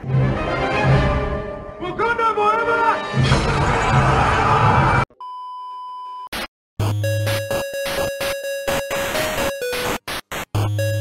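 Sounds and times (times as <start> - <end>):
electronic beep: 5.2 - 11.0.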